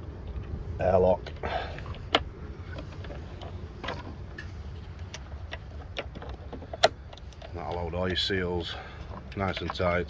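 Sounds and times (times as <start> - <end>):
steady low rumble: 0.0 - 10.0
metal clicks and knocks: 1.2 - 10.0.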